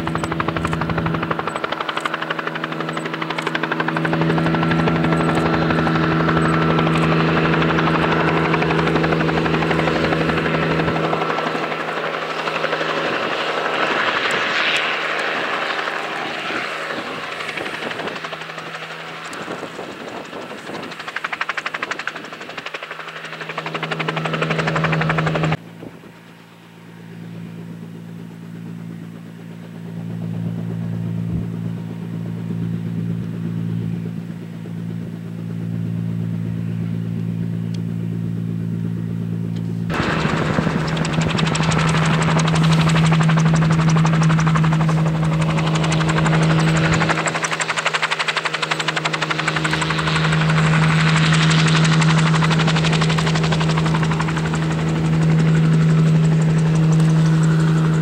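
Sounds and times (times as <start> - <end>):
helicopter engine and rotor: 0.0 - 58.0.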